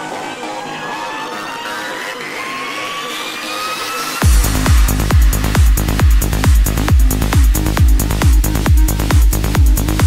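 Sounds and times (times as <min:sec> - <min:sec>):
rising synth sweep and noise: 0:01.7 - 0:10.0.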